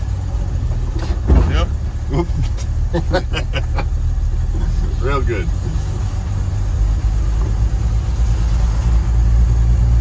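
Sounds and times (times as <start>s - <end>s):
engine and road rumble in cab: 0.0s - 10.0s
man laughing: 2.3s - 4.9s.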